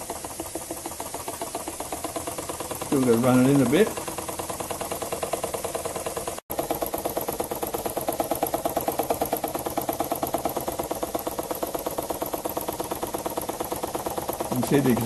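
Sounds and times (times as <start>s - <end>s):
model air engine chuffing: 0.0s - 15.0s.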